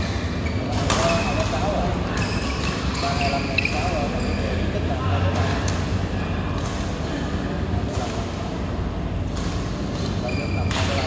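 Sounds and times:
shoes squeaking on court floor: 0.0 - 4.7, 9.9 - 11.0
steady low hum: 0.0 - 11.0
voices in a hall: 0.0 - 11.0.

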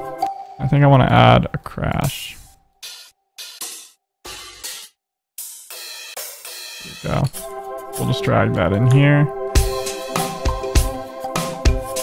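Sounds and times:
crash cymbal hits: 2.8 - 7.6.

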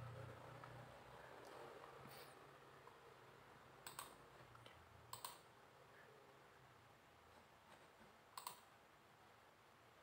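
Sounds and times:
computer mouse clicking: 3.8 - 5.5, 8.3 - 8.7.

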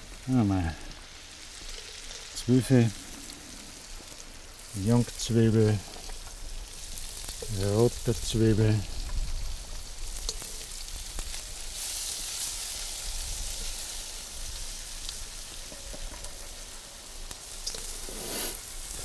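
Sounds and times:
food sizzling in a wok: 0.0 - 19.0.

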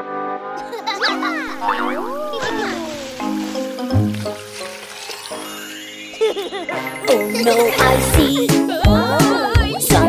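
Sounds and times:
bouncy children's music: 0.4 - 10.0
cartoon gliding squeal: 1.4 - 3.2.

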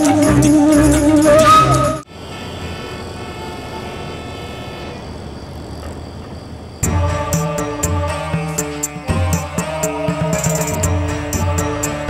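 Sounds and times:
music: 0.0 - 2.0, 6.8 - 12.0
city traffic hum: 0.0 - 12.0.

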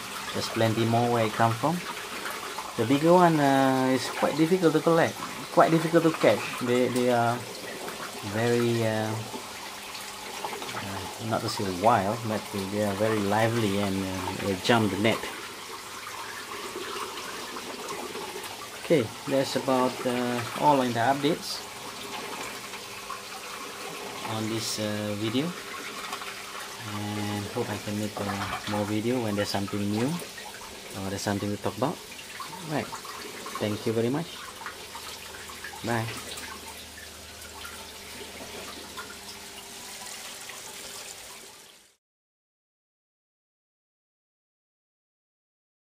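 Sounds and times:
water pouring into a tank: 0.0 - 42.0.

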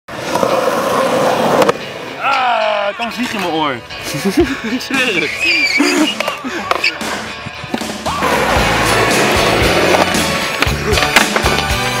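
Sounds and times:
skateboard wheels rolling on asphalt: 0.1 - 2.2, 7.0 - 12.0
sharp skateboard clack: 6.0 - 12.0.

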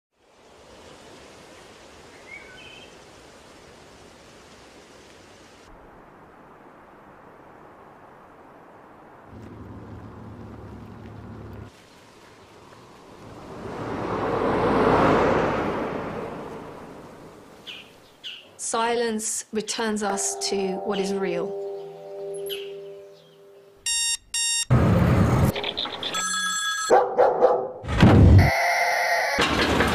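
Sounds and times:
open-air ambience: 0.2 - 27.0
vehicle passing by: 12.4 - 17.6
low hum: 20.1 - 23.8.

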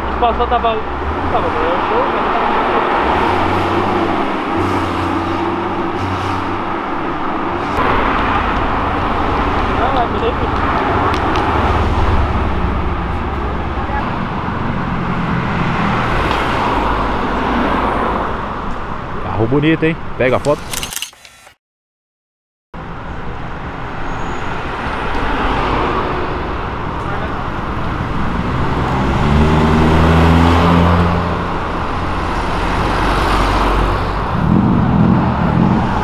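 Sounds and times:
people talking: 0.0 - 2.8, 9.8 - 11.1, 19.2 - 20.6, 27.0 - 27.5
cars driving past: 0.0 - 20.5, 22.8 - 36.0
traffic noise: 0.0 - 21.6, 22.8 - 36.0.

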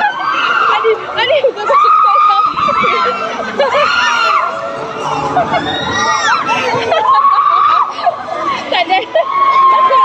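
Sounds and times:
people screaming and shouting: 0.0 - 10.0.

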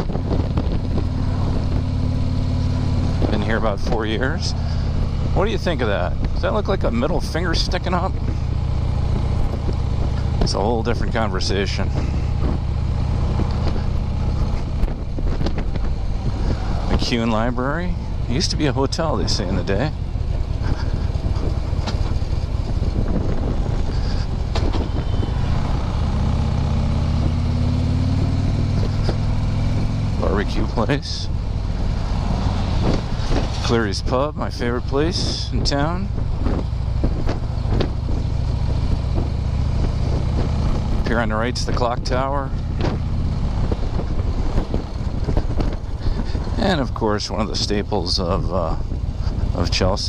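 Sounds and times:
motorcycle engine running: 0.0 - 50.0.

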